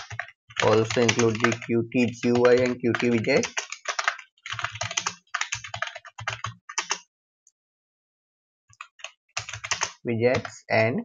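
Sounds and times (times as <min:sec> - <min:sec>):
typing on computer keyboard: 0:00.0 - 0:07.0, 0:08.7 - 0:10.6.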